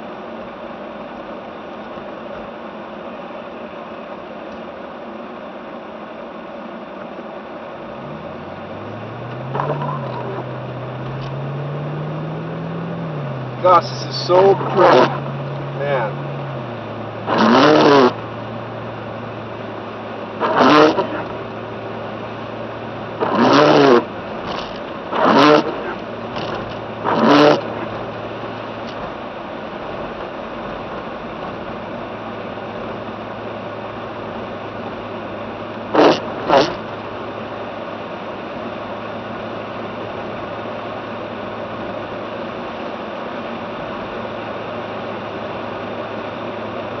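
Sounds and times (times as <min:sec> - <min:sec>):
car engine and road hum: 0:00.0 - 0:47.0.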